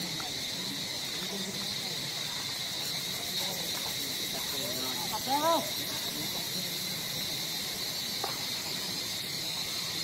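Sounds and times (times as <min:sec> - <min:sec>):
background murmur: 0:00.0 - 0:10.0
insects buzzing: 0:00.0 - 0:10.0.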